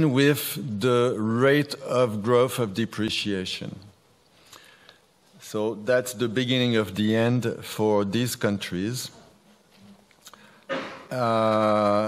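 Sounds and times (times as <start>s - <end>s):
short breath: 4.3s - 5.1s.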